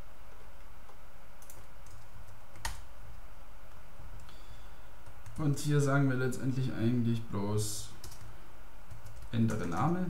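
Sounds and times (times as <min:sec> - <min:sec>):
steady low hum: 0:00.0 - 0:10.0
computer keyboard keystrokes: 0:01.4 - 0:02.8, 0:08.0 - 0:08.3, 0:08.9 - 0:09.9.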